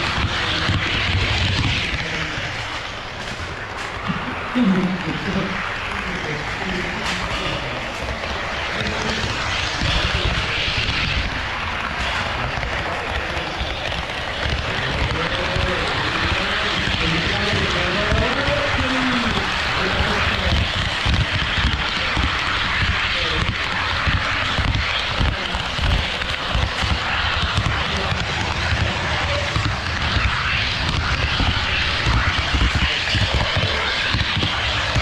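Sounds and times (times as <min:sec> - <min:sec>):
model train wheels rumbling: 0:00.0 - 0:35.0.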